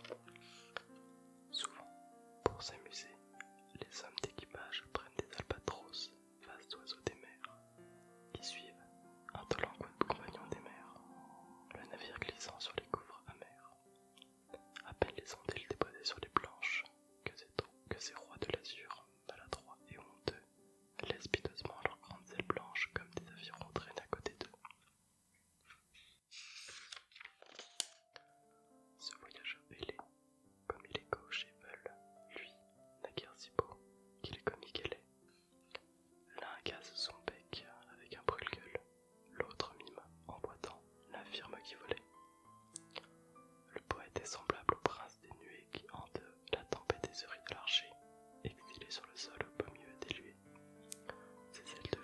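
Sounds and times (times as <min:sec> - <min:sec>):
man whispering: 0:00.0 - 0:00.9, 0:01.5 - 0:03.2, 0:03.8 - 0:07.6, 0:08.3 - 0:11.1, 0:11.7 - 0:13.9, 0:14.5 - 0:24.8, 0:29.0 - 0:30.1, 0:30.7 - 0:35.1, 0:35.7 - 0:42.0, 0:43.7 - 0:50.4, 0:51.0 - 0:52.0
soft background music: 0:00.0 - 0:25.3, 0:26.4 - 0:52.0
short hiss: 0:26.3 - 0:27.0.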